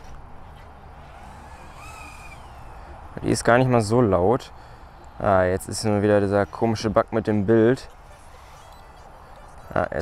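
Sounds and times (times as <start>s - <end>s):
quadcopter motor whine: 0.9s - 3.2s, 8.0s - 9.6s.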